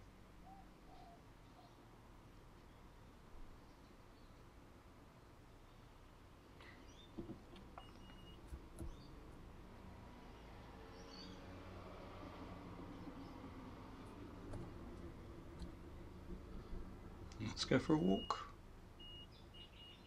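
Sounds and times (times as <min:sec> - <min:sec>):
faint bird chirps: 0:00.4 - 0:01.9, 0:18.1 - 0:20.0.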